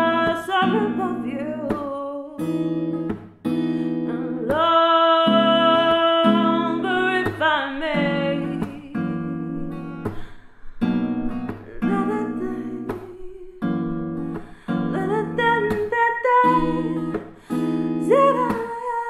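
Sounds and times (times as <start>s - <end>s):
woman singing: 0.0s - 2.7s, 3.8s - 10.4s, 11.8s - 19.0s
strummed acoustic guitar: 0.0s - 19.0s.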